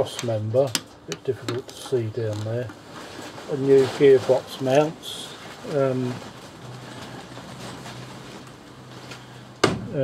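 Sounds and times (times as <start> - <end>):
handling rustles: 1.4 - 9.3.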